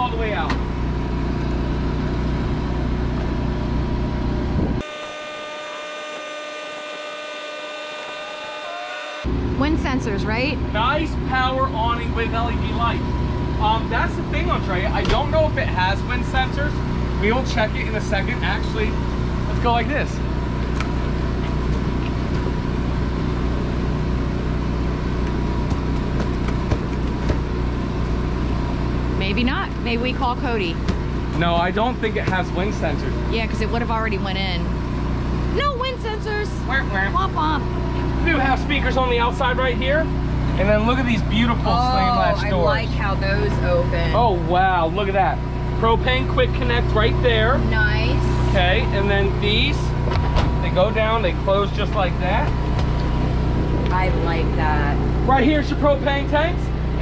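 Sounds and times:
awning motor humming: 0.0 - 57.0
faint whine: 27.8 - 57.0.

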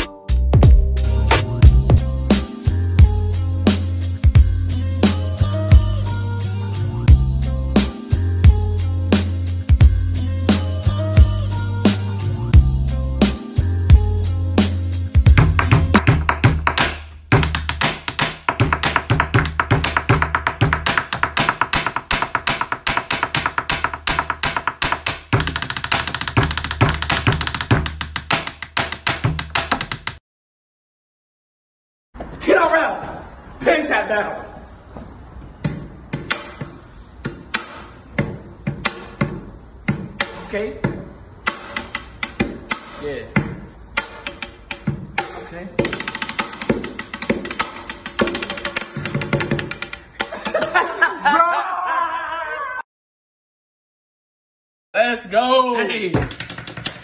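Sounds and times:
steady low bass: 0.4 - 5.0
pens drumming on wooden desk: 15.3 - 30.2, 35.7 - 50.6, 56.2 - 57.0.

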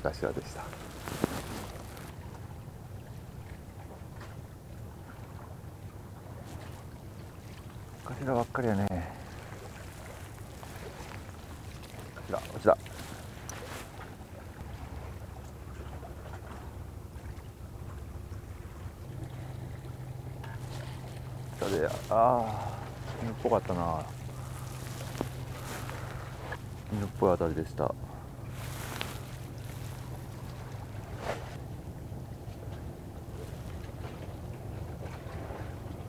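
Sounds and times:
wind rumble on microphone: 9.1 - 36.0.

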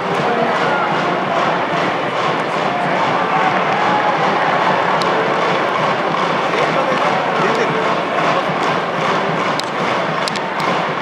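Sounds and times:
crowd noise: 0.0 - 11.0
stadium music with steady beat: 0.0 - 11.0.

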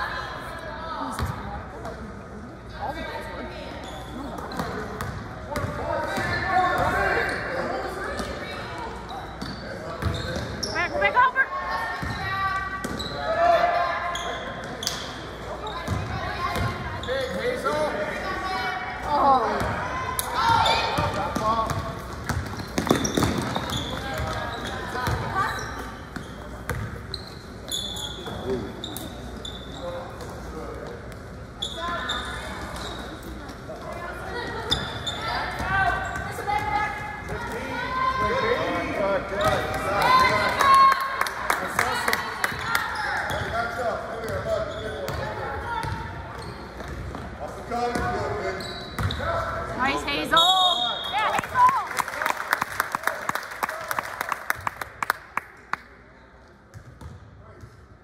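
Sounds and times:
voices calling out in gym: 0.0 - 56.7.

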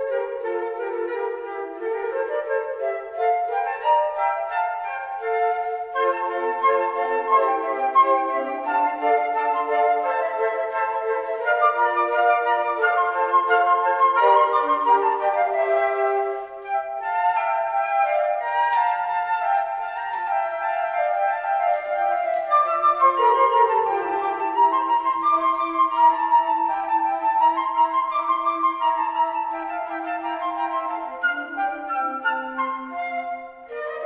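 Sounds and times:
flute choir playing in harmony: 0.0 - 34.0.

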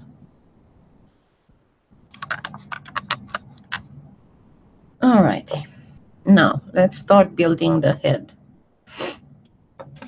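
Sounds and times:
computer keyboard keystrokes: 2.1 - 3.8.

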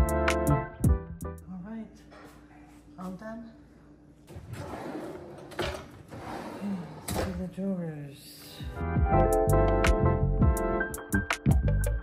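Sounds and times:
cabinets and drawers scraping: 4.3 - 7.4.

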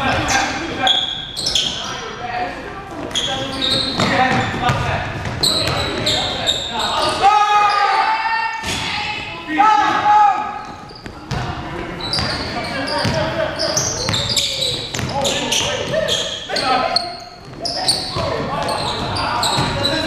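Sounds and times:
sneaker squeaks: 0.0 - 2.2, 3.0 - 8.9, 10.4 - 20.0
players' voices: 0.0 - 20.0
basketball bouncing on court: 4.0 - 6.1, 11.0 - 16.0, 17.5 - 20.0.

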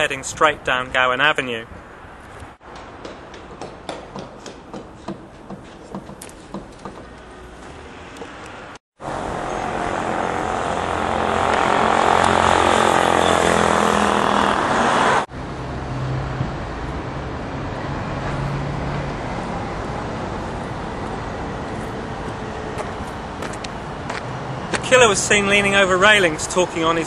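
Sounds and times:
road traffic: 0.0 - 27.0
vehicle passing close: 7.2 - 27.0.

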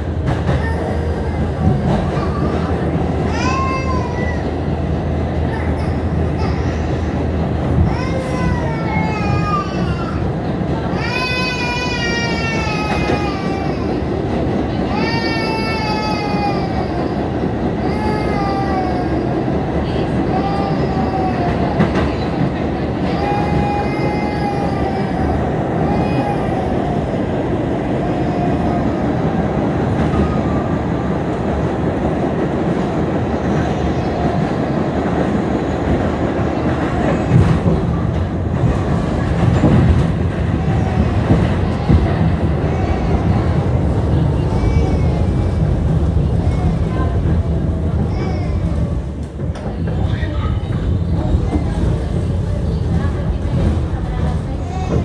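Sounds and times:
subway car rumbling on tracks: 0.0 - 55.0
child crying: 0.5 - 4.6, 7.8 - 22.0, 23.0 - 30.6.

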